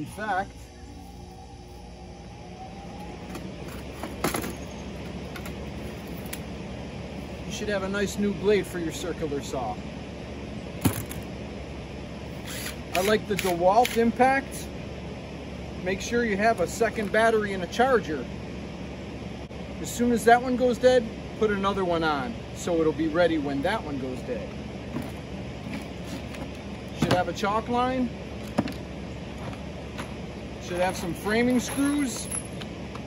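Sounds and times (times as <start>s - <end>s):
faint hum: 0.0s - 33.0s
low background rumble: 0.0s - 33.0s
tools clicking and clinking: 30.8s - 32.7s.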